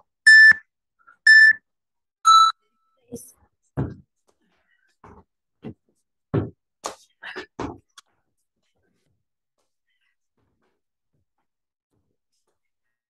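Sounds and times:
timer beeps: 0.0 - 1.6, 2.2 - 2.6
faint thuds of people exercising: 5.0 - 7.0.

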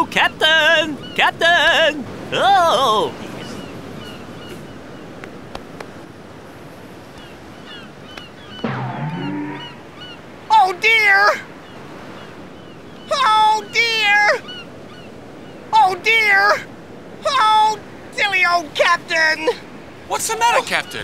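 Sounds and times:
short falling tone: 8.6 - 10.0
faint chirps: 8.6 - 10.2.

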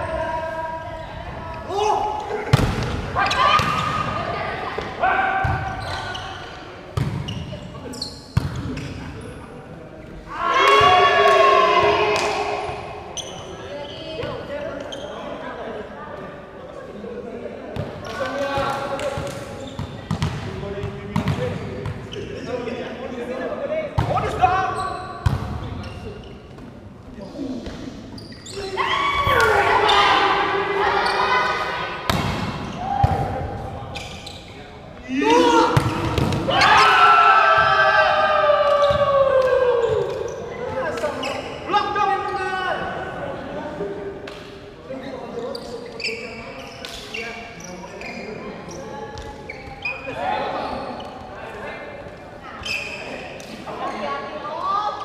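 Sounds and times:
players shouting and calling out: 0.0 - 15.8, 17.7 - 26.3, 27.2 - 44.3.

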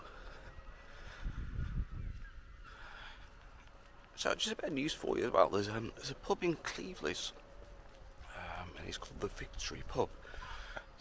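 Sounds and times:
faint bird calls: 0.0 - 4.1.

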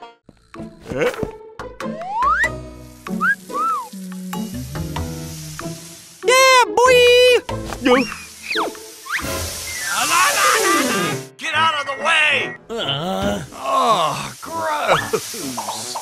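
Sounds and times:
background music: 0.0 - 16.0
squeaky wordless voice noises: 6.3 - 8.3, 9.8 - 15.6.

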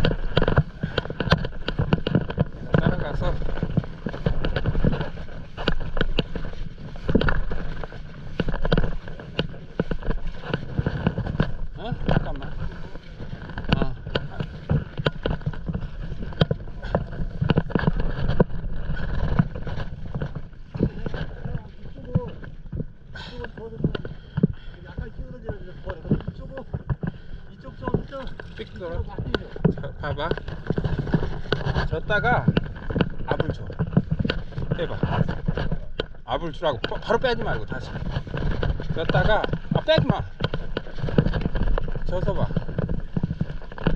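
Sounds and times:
paddles stroking through water: 0.0 - 43.9
wind on microphone: 0.0 - 43.9.

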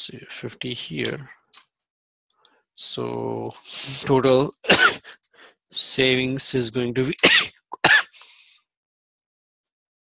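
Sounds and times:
man coughing: 4.7 - 5.2, 7.2 - 8.2
breath: 5.0 - 5.6, 8.1 - 8.7.

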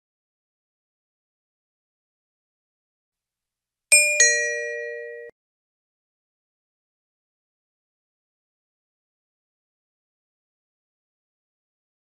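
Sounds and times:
two-note ding-dong chime: 3.9 - 5.3.

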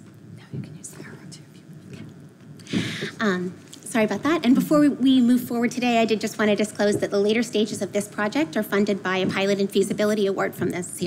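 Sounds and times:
low steady hum: 0.0 - 11.0
person whispering: 0.4 - 2.2.

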